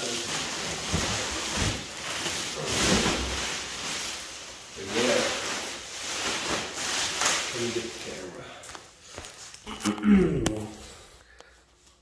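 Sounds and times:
plastic wrapping crinkling: 0:00.0 - 0:12.0
person vocal sounds: 0:09.6 - 0:11.1.

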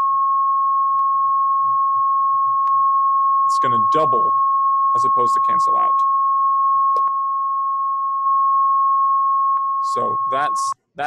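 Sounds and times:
sine-wave test tone: 0:00.0 - 0:11.0.

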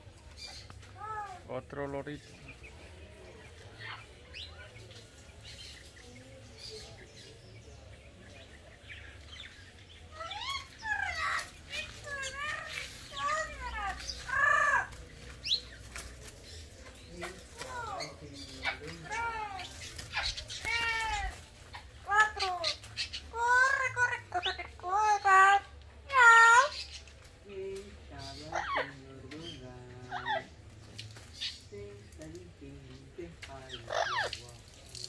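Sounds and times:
parrot squawking calls: 0:33.8 - 0:34.4.

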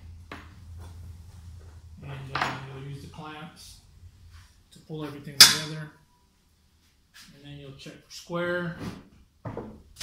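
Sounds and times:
low hum: 0:00.0 - 0:06.7.

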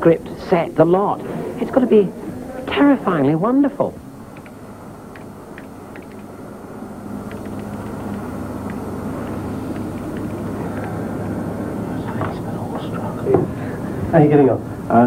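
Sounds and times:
steady low rumble: 0:00.0 - 0:15.0
keyboard typing clicks: 0:04.3 - 0:06.3, 0:07.2 - 0:11.0.

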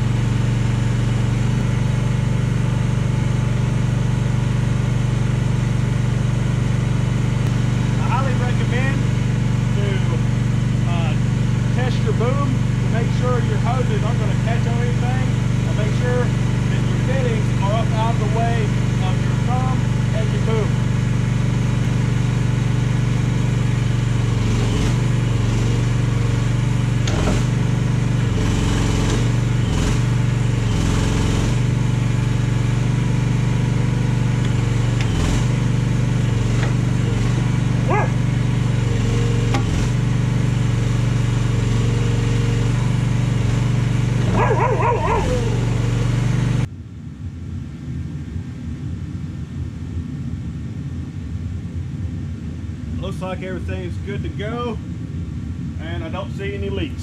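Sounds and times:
excavator engine running: 0:00.0 - 0:46.7.

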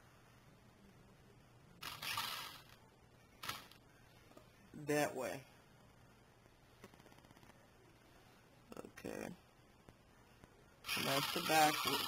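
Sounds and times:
toy car motor whirring: 0:01.8 - 0:02.8, 0:10.9 - 0:12.0.

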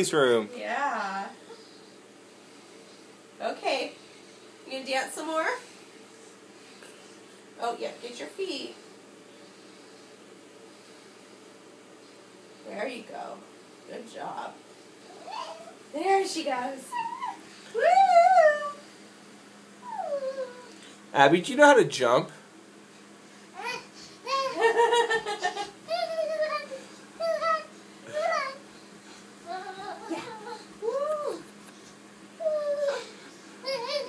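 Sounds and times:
toddler squealing: 0:15.2 - 0:15.7, 0:16.9 - 0:17.4
toddler vocalizing: 0:25.9 - 0:28.6.

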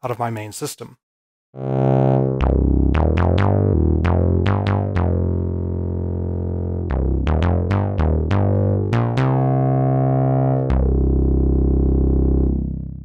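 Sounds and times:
synthesizer bass line: 0:01.6 - 0:13.0.

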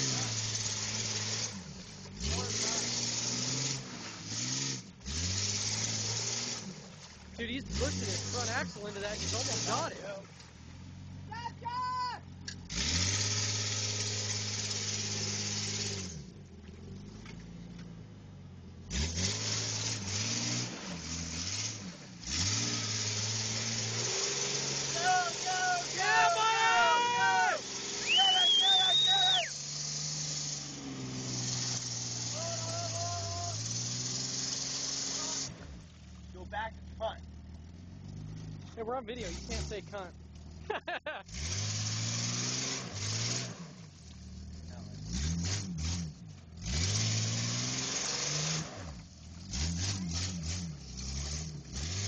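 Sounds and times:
engine revving: 0:00.0 - 0:11.4, 0:12.3 - 0:52.0
people shouting and whooping: 0:11.3 - 0:12.2, 0:24.9 - 0:29.6, 0:32.3 - 0:33.7.

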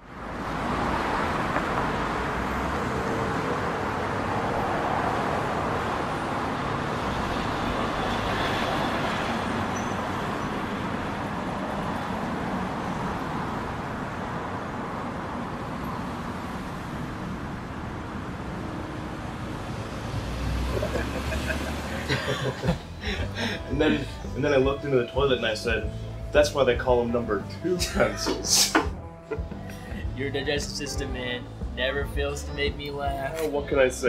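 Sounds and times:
city street traffic noise: 0:00.0 - 0:34.0.

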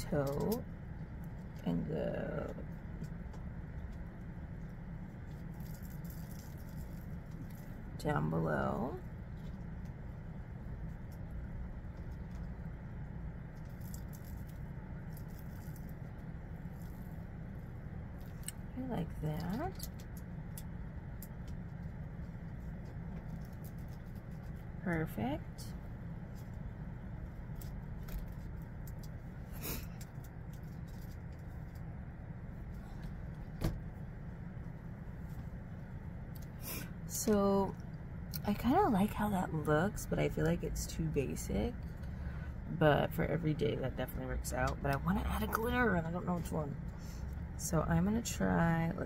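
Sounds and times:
low background hum: 0:00.0 - 0:49.0
low background rumble: 0:00.0 - 0:49.0.

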